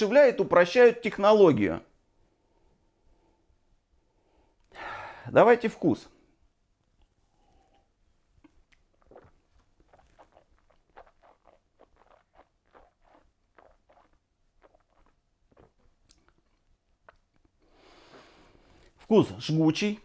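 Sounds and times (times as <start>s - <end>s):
lips and tongue smacking: 7.0s - 17.6s.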